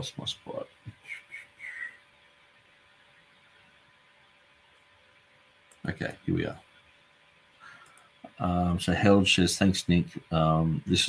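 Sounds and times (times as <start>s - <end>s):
soft whistled notes: 0.9s - 2.0s.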